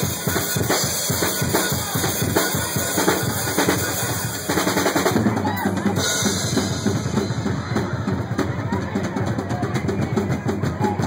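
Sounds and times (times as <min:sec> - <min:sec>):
drum solo fast strokes: 0:00.0 - 0:08.4.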